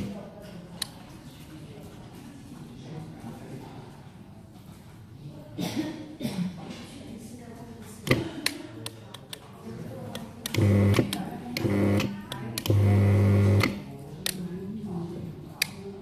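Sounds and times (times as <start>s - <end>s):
blind motor humming: 10.5s - 13.8s.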